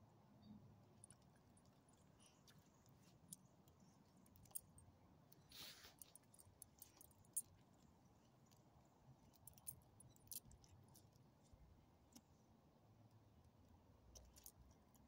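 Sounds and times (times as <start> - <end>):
breathy rustle: 5.5 - 6.0.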